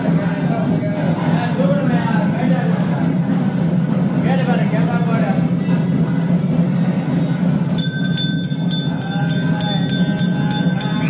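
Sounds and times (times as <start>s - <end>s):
steady low hum: 0.0s - 11.0s
hand bell ringing rapidly: 7.8s - 11.0s.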